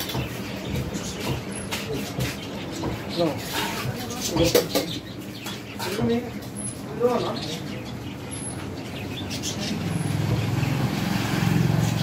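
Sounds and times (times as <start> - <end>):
vehicle engine running: 9.6 - 12.0.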